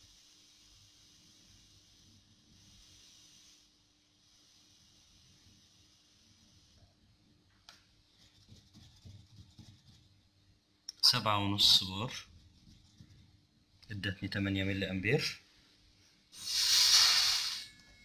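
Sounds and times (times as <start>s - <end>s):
faint steady hiss: 0.0s - 18.0s.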